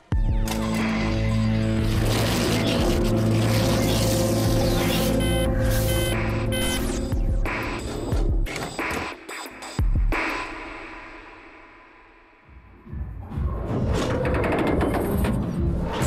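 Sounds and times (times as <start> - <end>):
film music with low drone: 0.0 - 9.1
short electronic beeps: 5.1 - 6.9.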